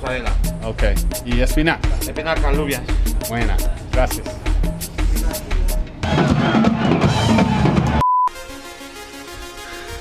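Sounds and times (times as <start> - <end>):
live band playing loudly: 4.6 - 8.0.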